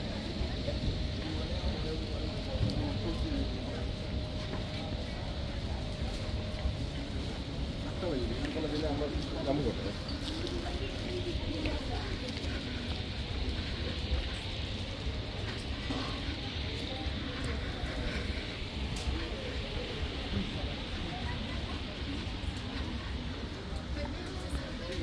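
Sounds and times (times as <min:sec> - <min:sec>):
indistinct voices: 0:00.0 - 0:25.0
steady low rumble: 0:00.0 - 0:25.0.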